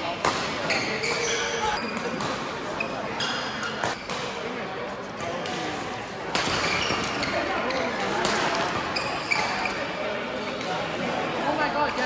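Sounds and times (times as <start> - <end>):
racket hitting shuttlecock: 0.2 - 2.5, 6.3 - 7.2
shoes squeaking on floor: 0.6 - 4.1, 6.5 - 8.0, 8.8 - 9.9.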